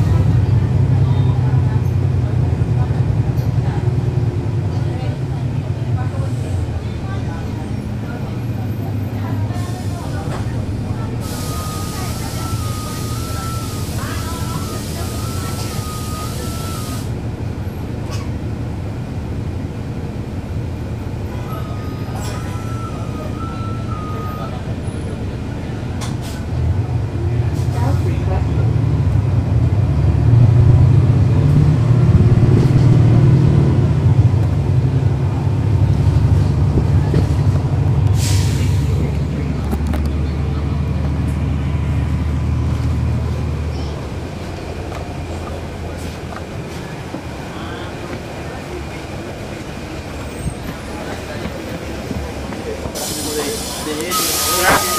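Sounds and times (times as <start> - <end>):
bus diesel engine pulling away: 0.0 - 54.9
air hiss: 52.9 - 54.9.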